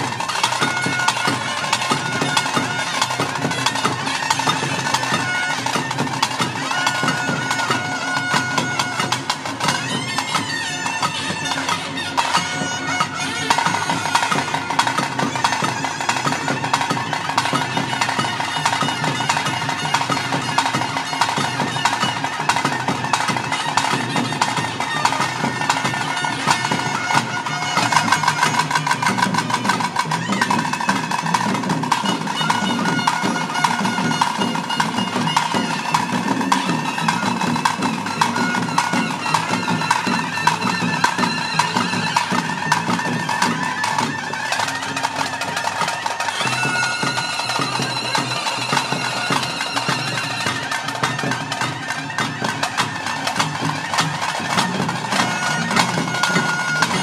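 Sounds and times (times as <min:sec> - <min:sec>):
fast continuous drumming: 0:00.0 - 0:57.0
reedy wind instrument melody: 0:00.0 - 0:57.0.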